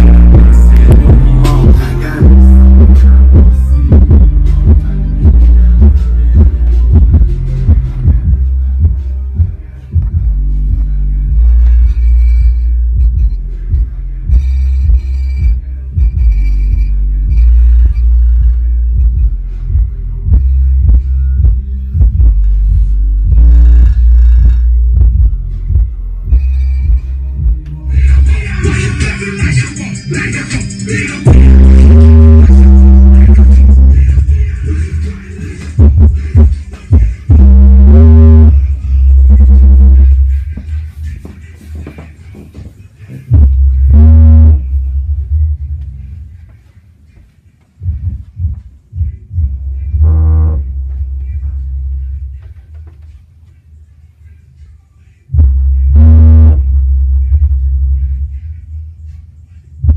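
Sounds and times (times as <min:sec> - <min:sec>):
deep sub-bass note: 0:00.0 - 0:28.3, 0:31.3 - 0:34.3, 0:37.3 - 0:40.4, 0:43.3 - 0:45.7, 0:49.0 - 0:52.4, 0:55.4 - 0:58.3
bass-boosted hip-hop music: 0:00.0 - 0:59.9.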